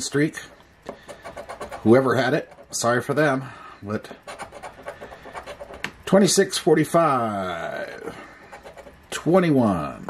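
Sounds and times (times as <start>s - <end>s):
coin scraping lottery ticket: 1.0s - 2.8s, 4.2s - 5.8s.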